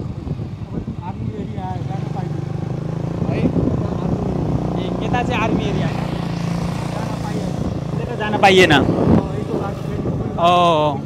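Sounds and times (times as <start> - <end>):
motorcycle engine running: 0.0 - 11.0
voices: 0.6 - 11.0.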